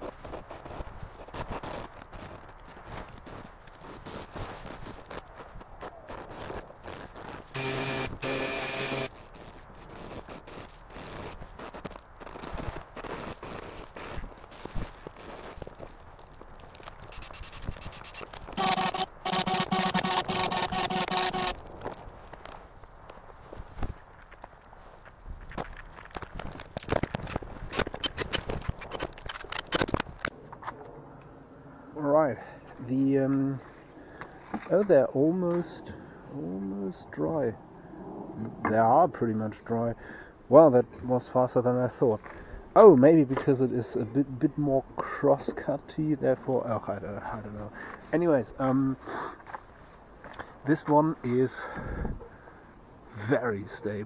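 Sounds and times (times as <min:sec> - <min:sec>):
steady pitched hum: 0:07.5 - 0:09.2, 0:17.0 - 0:22.0.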